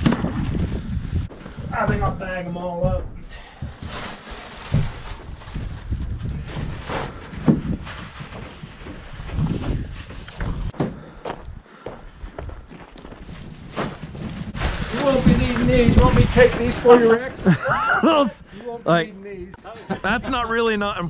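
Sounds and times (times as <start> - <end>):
footsteps on gravel: 7.7 - 15.7.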